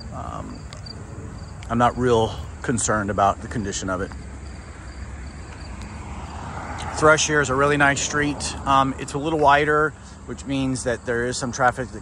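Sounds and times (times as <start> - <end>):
faint insect chirring: 0.0 - 2.6
steady low rumble: 0.0 - 6.0
passing vehicle: 0.0 - 12.0.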